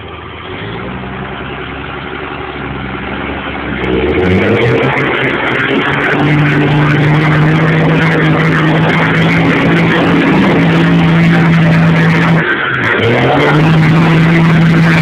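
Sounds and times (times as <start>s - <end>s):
diesel truck engine revving: 0.0s - 15.0s.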